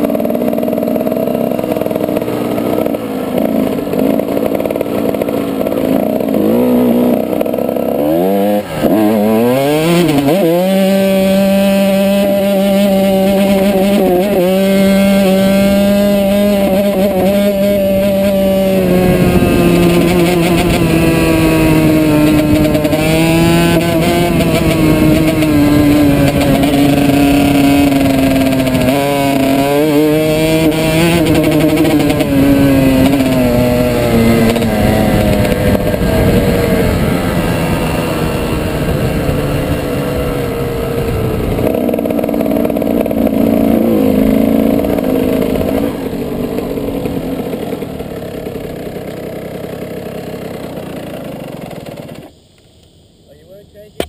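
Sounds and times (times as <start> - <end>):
dirt bike engine revving: 0.0 - 52.4.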